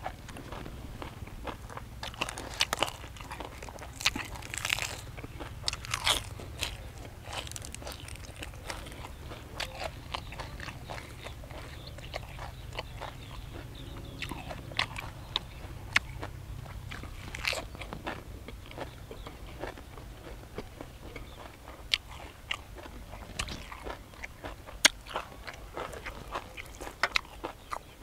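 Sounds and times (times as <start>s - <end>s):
low hum: 0.0s - 27.4s
crunchy chewing: 0.0s - 28.0s.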